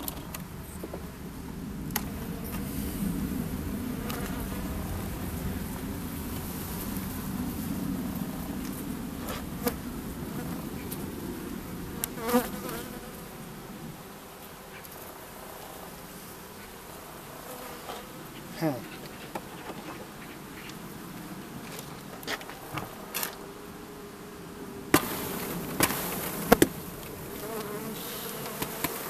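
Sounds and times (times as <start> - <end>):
honeybees buzzing: 0.0 - 29.0.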